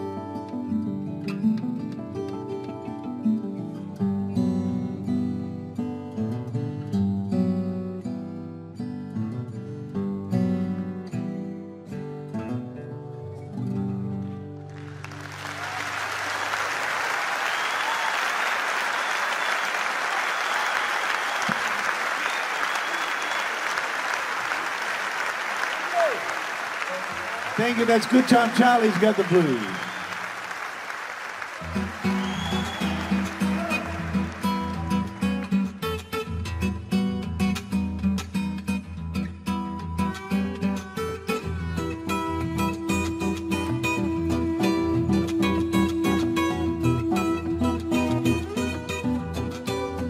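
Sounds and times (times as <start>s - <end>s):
fingerstyle acoustic guitar: 0.0s - 15.0s, 31.6s - 50.0s
audience applauding: 14.6s - 36.1s.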